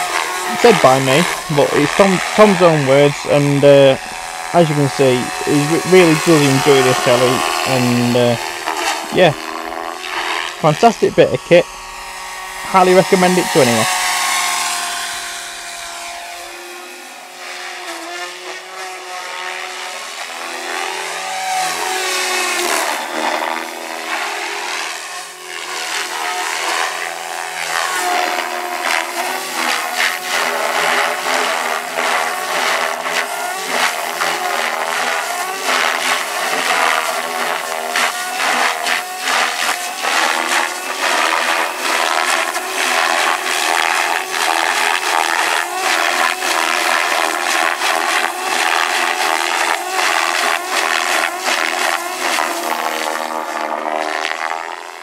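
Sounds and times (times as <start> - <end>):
rc helicopter motor and rotor whine: 0.0 - 55.0.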